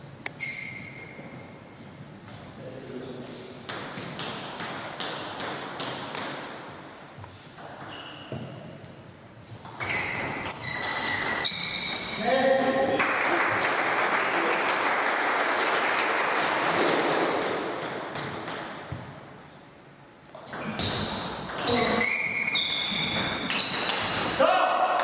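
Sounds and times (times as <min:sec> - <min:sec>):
table tennis rally: 0:03.6 - 0:08.9, 0:09.6 - 0:19.4, 0:20.3 - 0:25.0
table tennis ball bouncing: 0:03.7 - 0:06.6, 0:16.6 - 0:19.2, 0:20.3 - 0:21.9, 0:22.8 - 0:24.4.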